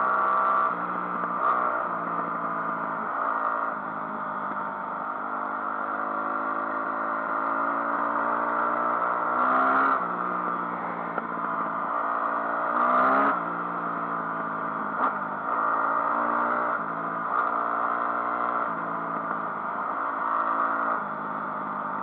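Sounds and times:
motorcycle engine under load: 0.0s - 22.0s.

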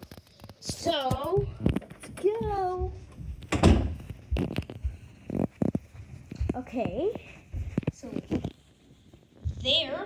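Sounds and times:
door shutting thump: 3.5s - 4.0s.

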